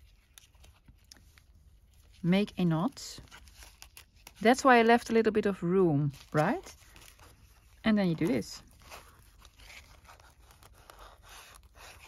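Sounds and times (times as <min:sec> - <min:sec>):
cord and paper handling ticks: 0:00.0 - 0:05.2, 0:06.0 - 0:12.0.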